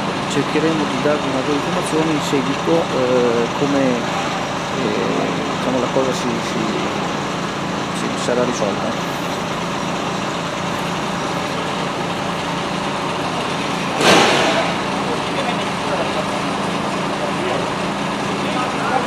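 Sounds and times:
fire engines droning: 0.0s - 19.0s
sudden loud burst of noise: 13.8s - 15.2s.

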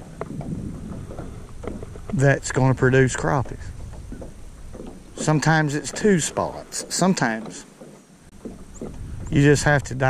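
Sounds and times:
wind rumbling on microphone: 0.0s - 6.9s, 8.1s - 10.0s
water and boat noise: 0.0s - 10.0s.

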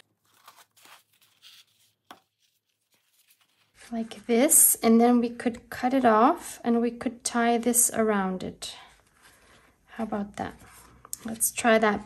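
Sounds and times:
cloth rustling and scraping: 0.0s - 4.2s.

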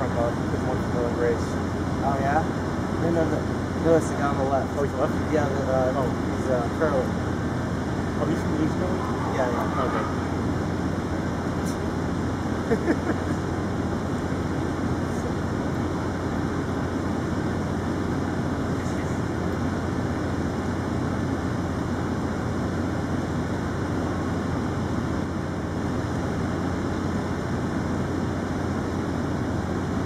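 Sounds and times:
constant hum: 0.0s - 30.0s
low mechanical rumble: 0.0s - 30.0s.

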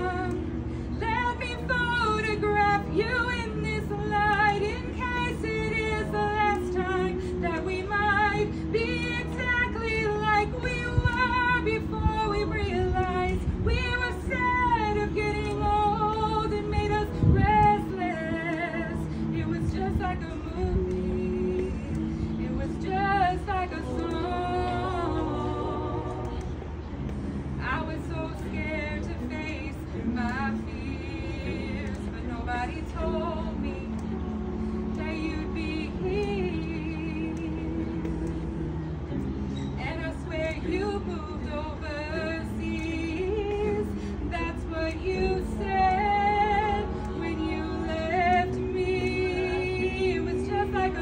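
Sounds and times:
a cappella choir singing harmony: 0.0s - 26.6s, 27.7s - 38.8s, 39.6s - 51.0s.

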